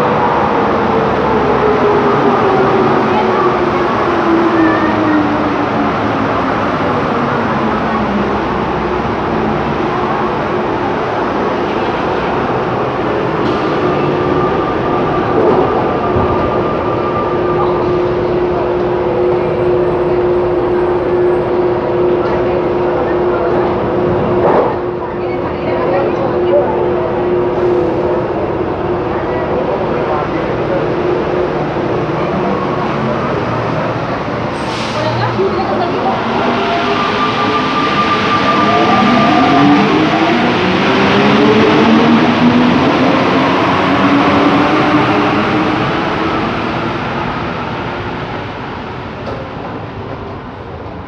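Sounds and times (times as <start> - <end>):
electrical hum from train: 0.0 - 51.0
passengers chattering: 0.0 - 51.0.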